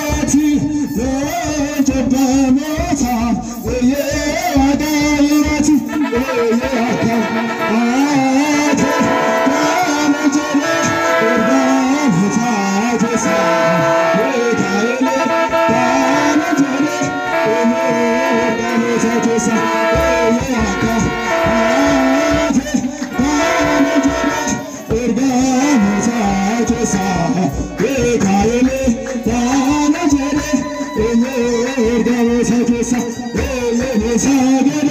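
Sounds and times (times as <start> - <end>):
drum beat: 0.0 - 34.9
male voices chanting a hymn: 0.0 - 34.9.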